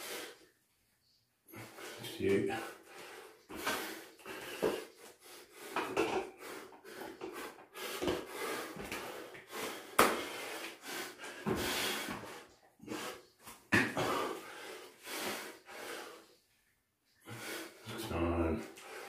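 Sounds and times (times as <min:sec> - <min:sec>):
man breathing hard: 0:01.5 - 0:16.4, 0:17.1 - 0:17.9, 0:18.6 - 0:19.0.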